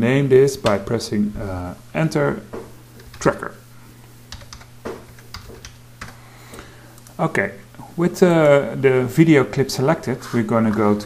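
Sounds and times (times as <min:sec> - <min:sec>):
keyboard keys clicking: 0:04.3 - 0:06.2.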